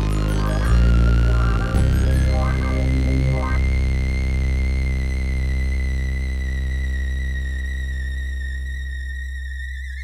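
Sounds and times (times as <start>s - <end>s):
deep buzzing drone: 0.0s - 10.0s.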